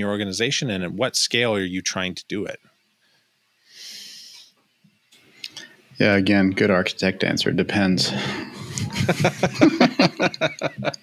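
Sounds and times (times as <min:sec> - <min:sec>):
hissy exhale into microphone: 0:03.6 - 0:04.5.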